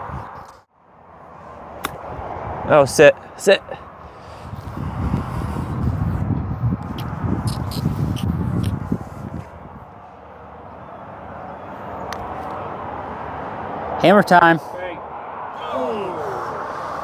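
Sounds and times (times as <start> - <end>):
wind buffeting microphone: 0.0 - 0.6, 1.5 - 3.0, 3.8 - 10.7.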